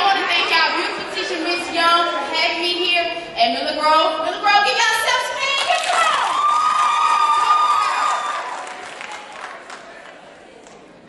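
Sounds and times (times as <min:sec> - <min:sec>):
crowd cheering and screaming: 0:06.0 - 0:09.3
long high-pitched scream: 0:06.2 - 0:08.5.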